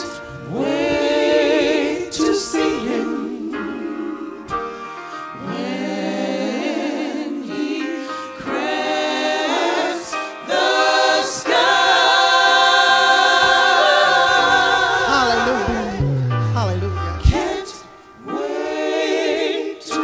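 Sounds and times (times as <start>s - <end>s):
gospel choir singing: 0.0s - 20.0s.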